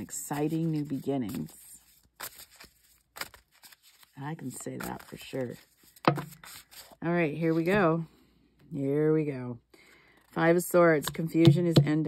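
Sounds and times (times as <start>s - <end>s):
cards rustling on cloth: 0.0s - 7.8s.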